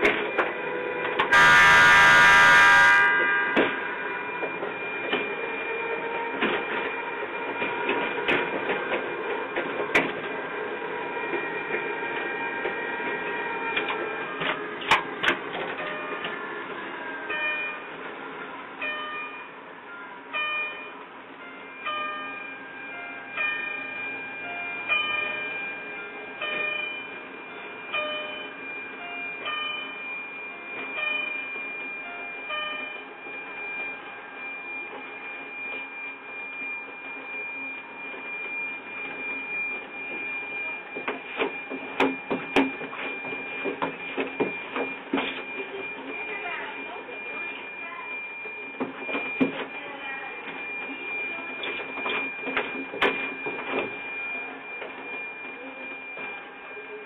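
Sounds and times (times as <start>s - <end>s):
electric train motor whine: 0.0s - 57.0s
high tone: 1.2s - 6.9s.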